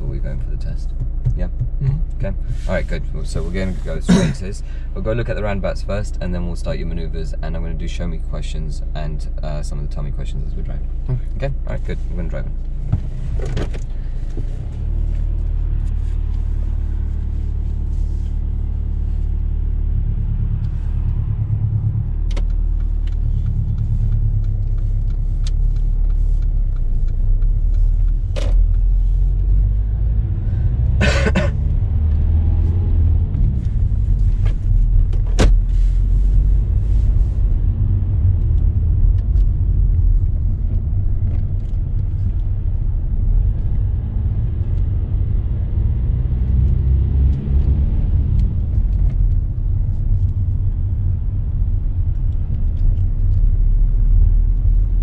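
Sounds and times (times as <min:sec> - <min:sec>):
car engine and tyres rumbling: 0:00.0 - 0:55.0.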